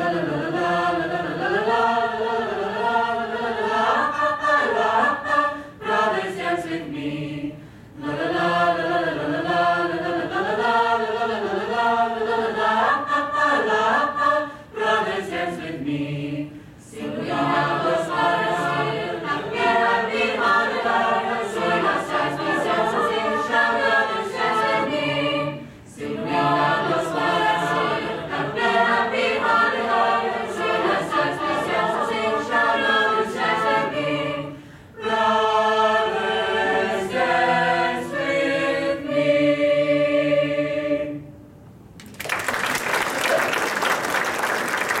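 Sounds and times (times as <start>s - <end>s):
choir singing in harmony: 0.0s - 41.5s
audience applause: 42.0s - 45.0s.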